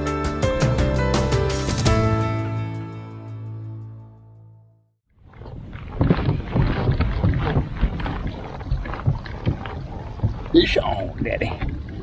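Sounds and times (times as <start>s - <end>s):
water lapping against kayak hull: 5.1s - 12.0s
wind on microphone: 5.2s - 12.0s.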